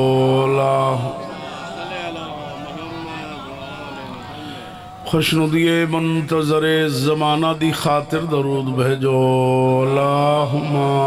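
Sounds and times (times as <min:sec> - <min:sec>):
man chanting into a microphone: 0:00.0 - 0:04.0, 0:05.0 - 0:11.0.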